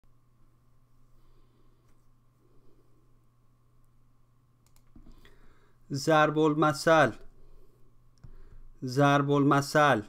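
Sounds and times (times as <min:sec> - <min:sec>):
low steady hum: 0:00.0 - 0:10.0
faint sharp clicks: 0:04.6 - 0:05.4
man speaking: 0:05.9 - 0:07.3, 0:08.8 - 0:10.0.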